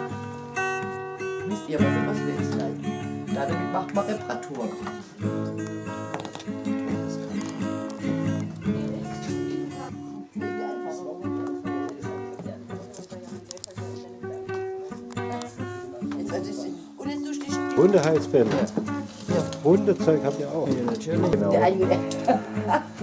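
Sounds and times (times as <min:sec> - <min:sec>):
guitar music: 0:00.0 - 0:23.0.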